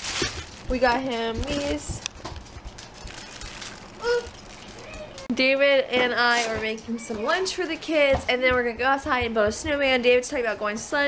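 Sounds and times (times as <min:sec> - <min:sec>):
plastic bag rustling: 0:00.0 - 0:05.3.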